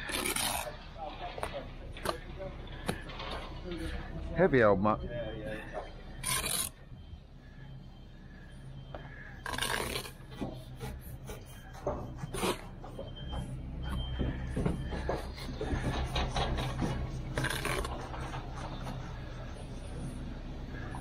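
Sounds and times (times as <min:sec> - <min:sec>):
trowel scraping mortar: 0:00.0 - 0:00.8, 0:06.2 - 0:06.8, 0:09.4 - 0:13.0, 0:15.2 - 0:19.4
steady low hum: 0:00.0 - 0:21.0.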